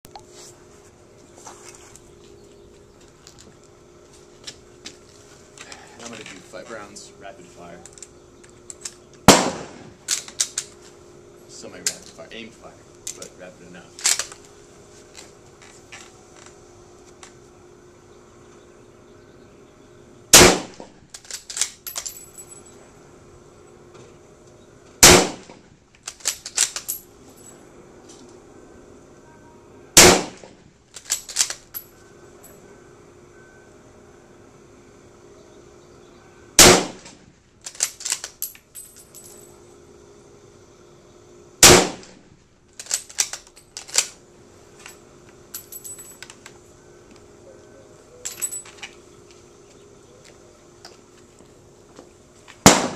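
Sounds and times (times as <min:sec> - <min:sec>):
rifle shots: 0:09.2 - 0:10.0, 0:20.3 - 0:20.8, 0:25.0 - 0:25.6, 0:30.0 - 0:30.5, 0:36.6 - 0:37.1, 0:41.6 - 0:42.2, 0:52.6 - 0:52.9.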